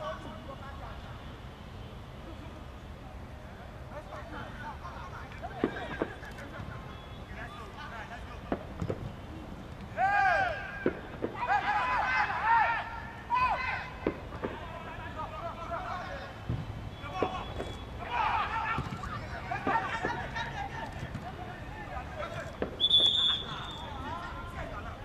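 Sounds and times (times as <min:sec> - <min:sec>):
players shouting: 0:09.8 - 0:25.0.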